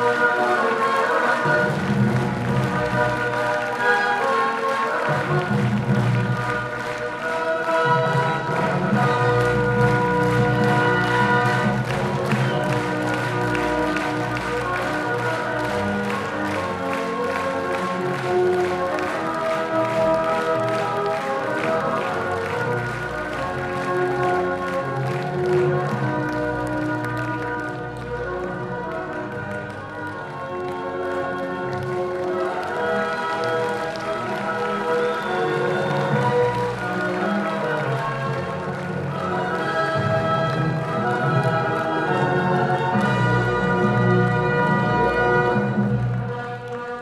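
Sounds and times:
audience applause: 0.0s - 47.0s.

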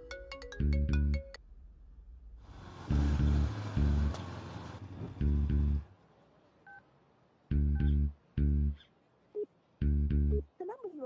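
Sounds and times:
low bass music notes: 0.6s - 1.4s, 2.9s - 4.2s, 5.2s - 5.9s, 7.5s - 8.8s, 9.8s - 10.4s.

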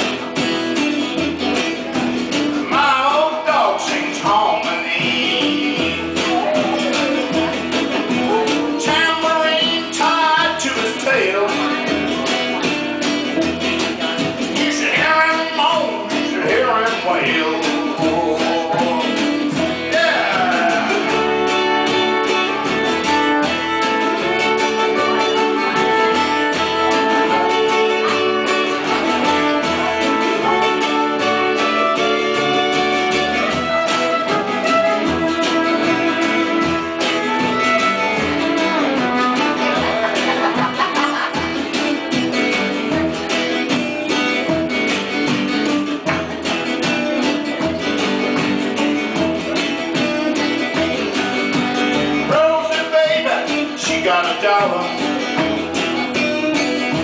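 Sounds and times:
acoustic blues band playing: 0.0s - 57.0s
strummed acoustic guitar: 0.0s - 57.0s.

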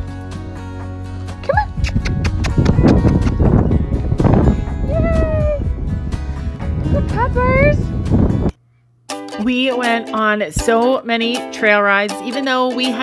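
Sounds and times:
background music: 0.0s - 8.5s, 9.1s - 13.0s.

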